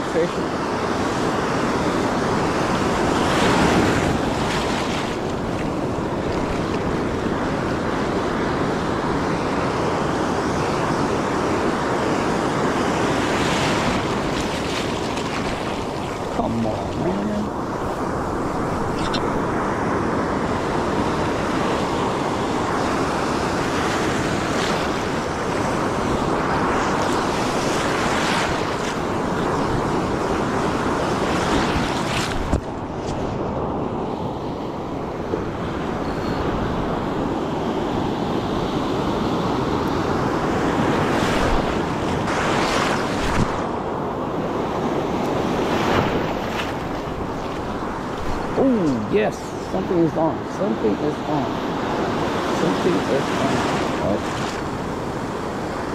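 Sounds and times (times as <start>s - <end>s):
ocean surf breaking: 0.0s - 55.9s.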